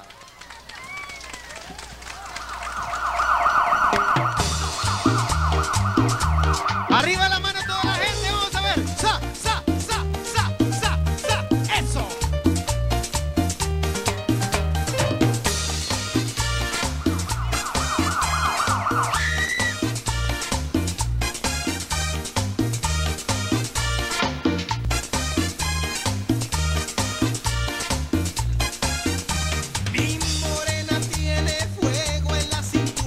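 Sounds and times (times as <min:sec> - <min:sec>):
siren-like yelp: 0:02.3 - 0:08.2, 0:15.8 - 0:20.0
live band playing: 0:02.6 - 0:33.0.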